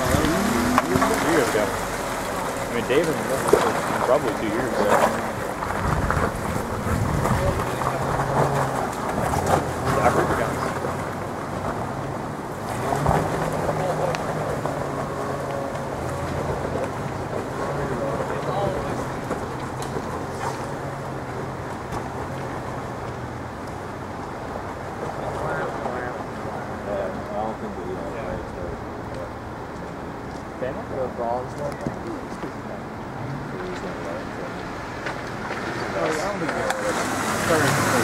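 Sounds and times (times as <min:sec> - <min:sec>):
off-road vehicle engine low revs: 0:00.0 - 0:38.0.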